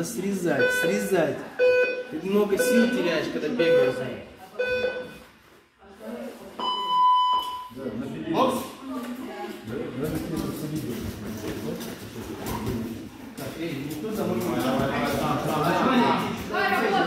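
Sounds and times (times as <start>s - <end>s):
gym chatter: 0.0s - 17.0s.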